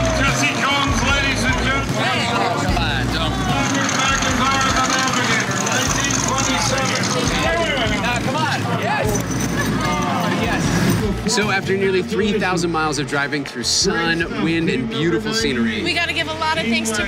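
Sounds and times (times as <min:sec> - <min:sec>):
people shouting and cheering: 0:00.0 - 0:17.0.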